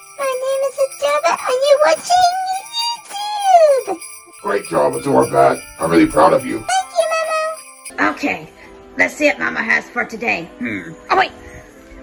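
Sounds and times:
high-pitched cartoon voice: 0:00.1 - 0:04.0, 0:06.6 - 0:07.6.

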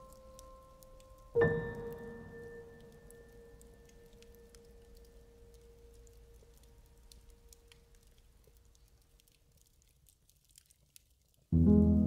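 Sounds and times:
log fire crackling: 0:00.0 - 0:11.6
calm music with held chords: 0:11.6 - 0:12.0.

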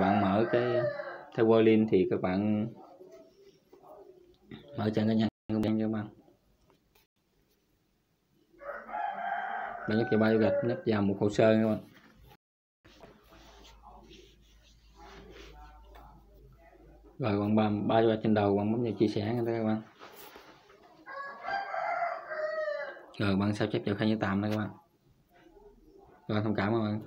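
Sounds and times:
rooster crowing: 0:00.0 - 0:01.4, 0:08.6 - 0:11.0, 0:21.0 - 0:23.2.

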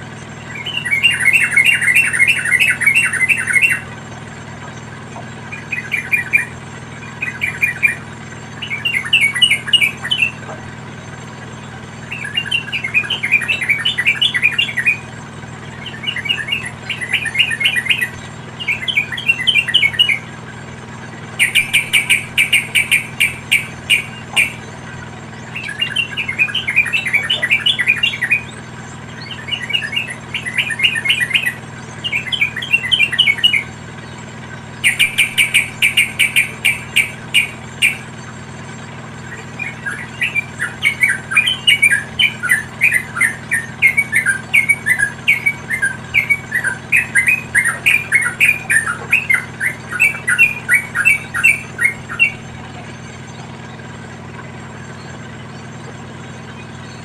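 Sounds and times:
bulbuls chattering: 0:00.4 - 0:57.0
fast sharp clicking notes: 0:21.4 - 0:24.8, 0:34.8 - 0:38.1.

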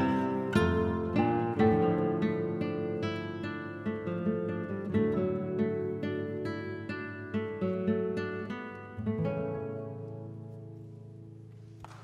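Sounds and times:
classical guitars plucking notes: 0:00.0 - 0:12.0.

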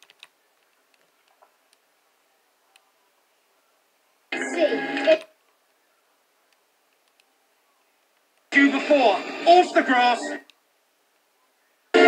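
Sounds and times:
film dialogue through tv speaker: 0:00.0 - 0:12.0.

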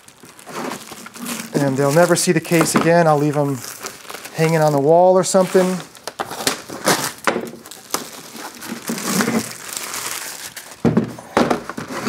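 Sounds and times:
plastic shrink-wrap crinkling: 0:00.0 - 0:12.0.

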